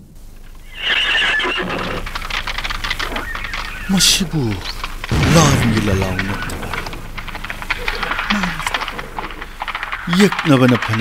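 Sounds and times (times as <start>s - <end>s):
horse whinnying: 0.6s - 2.2s, 3.0s - 4.0s
galloping hoofbeats: 1.6s - 11.0s.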